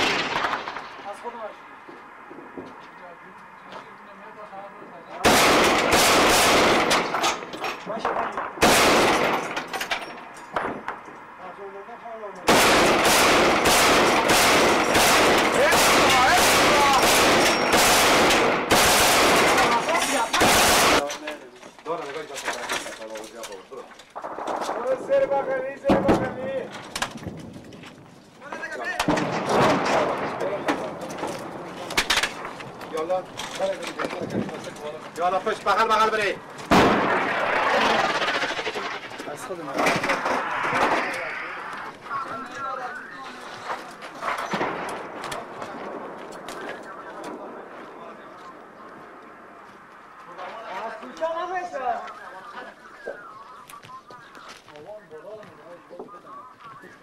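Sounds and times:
single gunshots: 0:00.0 - 0:01.2, 0:05.2 - 0:07.4, 0:08.1 - 0:09.7, 0:12.5 - 0:21.0, 0:36.7 - 0:39.0
automatic gunfire: 0:05.2 - 0:07.4, 0:08.4 - 0:09.6, 0:12.5 - 0:21.0, 0:36.7 - 0:41.0.

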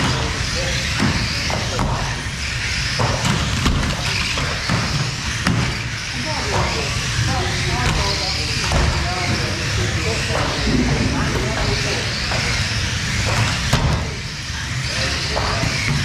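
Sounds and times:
electric toy car motors running: 0:00.0 - 0:16.0
voices chattering: 0:00.0 - 0:16.0.

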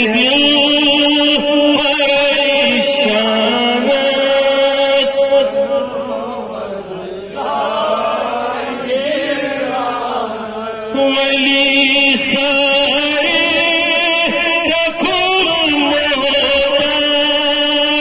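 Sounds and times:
man chanting through microphone: 0:00.0 - 0:08.0, 0:08.8 - 0:18.0.

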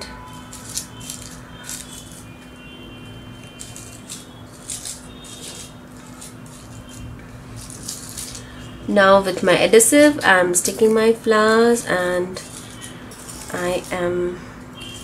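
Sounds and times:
paper rustling and scraping: 0:00.2 - 0:02.5, 0:03.4 - 0:08.8, 0:10.6 - 0:14.1.

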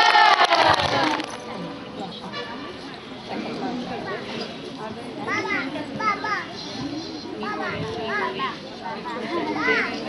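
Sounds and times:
murmur of voices: 0:00.0 - 0:10.0
young children chattering: 0:00.8 - 0:10.0.

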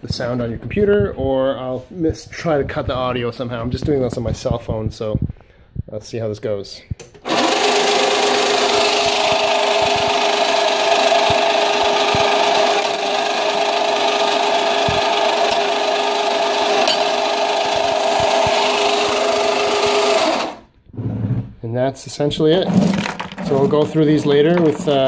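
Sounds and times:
motor hum: 0:07.2 - 0:20.8
gearing grinding whine: 0:07.2 - 0:20.9.

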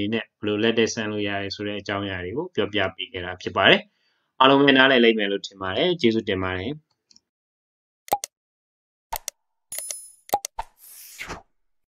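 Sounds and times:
mouse clicks: 0:09.1 - 0:10.6.

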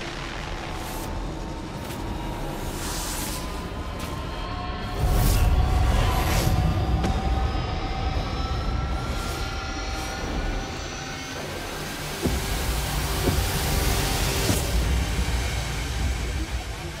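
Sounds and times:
dense rumble of sound effects: 0:00.0 - 0:17.0
trailer music: 0:00.0 - 0:17.0.

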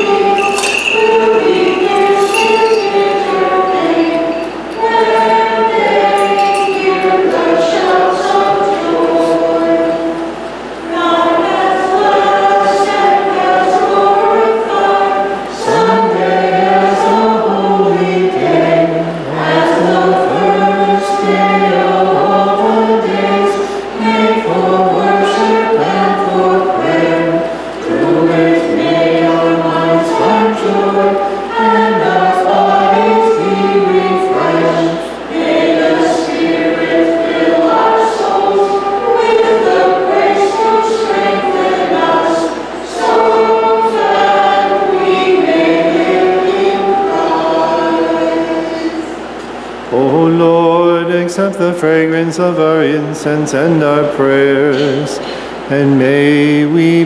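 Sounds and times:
choir singing a hymn: 0:00.0 - 0:57.0.

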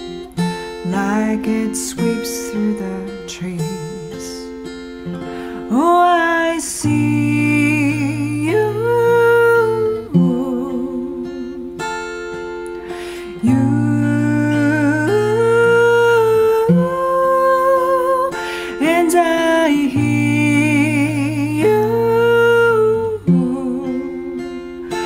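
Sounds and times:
acoustic guitar: 0:00.0 - 0:25.0.

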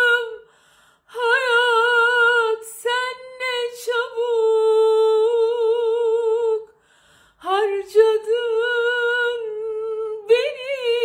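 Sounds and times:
woman singing wordless melody: 0:00.0 - 0:06.8, 0:07.4 - 0:11.0.

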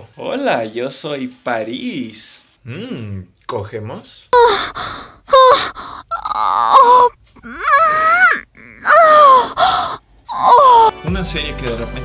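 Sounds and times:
man moaning in high pitch: 0:05.3 - 0:09.7, 0:10.3 - 0:10.9.

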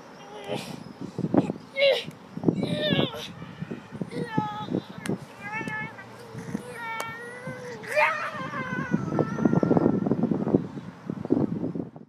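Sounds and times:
girl wailing and screaming: 0:01.8 - 0:03.3, 0:04.1 - 0:10.1.

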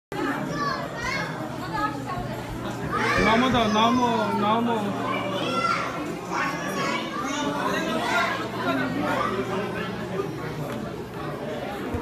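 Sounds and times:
people chattering: 0:00.1 - 0:12.0
young children's voices: 0:00.2 - 0:01.5, 0:02.8 - 0:09.8.

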